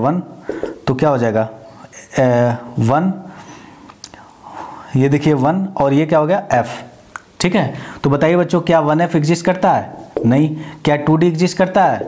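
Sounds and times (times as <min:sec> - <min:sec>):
marker scratching on whiteboard: 0:00.5 - 0:00.8.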